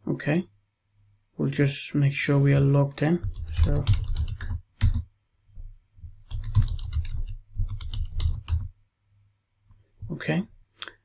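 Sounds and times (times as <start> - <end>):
computer keyboard typing: 3.2 - 5.1, 6.2 - 8.7.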